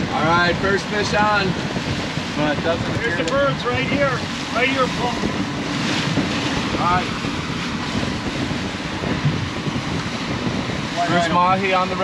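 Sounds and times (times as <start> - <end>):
outboard motors running: 0.0 - 12.0
rush of boat wake: 0.0 - 12.0
wind on microphone: 0.0 - 12.0.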